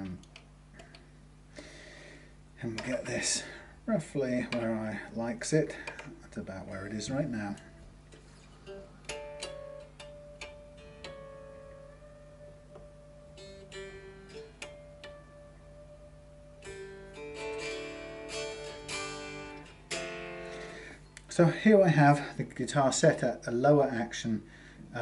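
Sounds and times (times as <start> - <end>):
electric guitar notes and chords: 8.6 - 21.3.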